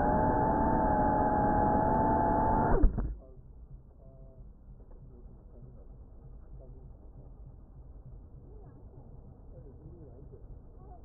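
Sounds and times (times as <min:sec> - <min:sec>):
drone motors whining: 0:00.0 - 0:03.2.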